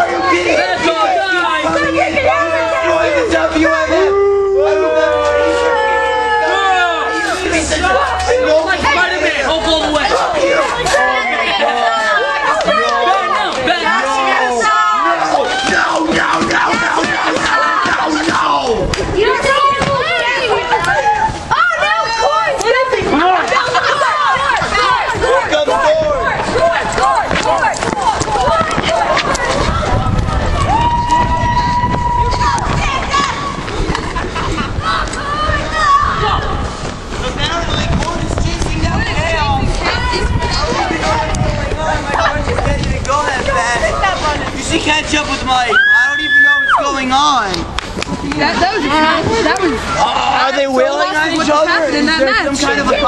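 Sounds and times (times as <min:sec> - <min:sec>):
voices howling: 0:00.0 - 0:33.6
person shouting a long high tone: 0:03.7 - 0:07.3
low rumbling noise: 0:26.0 - 0:45.5.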